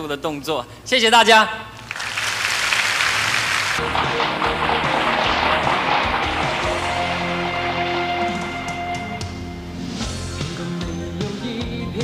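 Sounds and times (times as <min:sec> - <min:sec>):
audience applause: 0:01.9 - 0:09.0
band music: 0:03.8 - 0:12.0.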